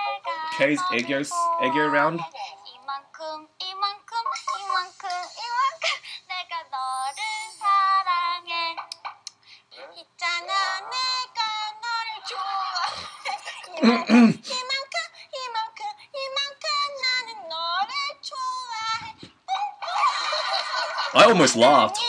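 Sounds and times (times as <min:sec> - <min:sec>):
sing-song singing: 0:00.0 - 0:02.3.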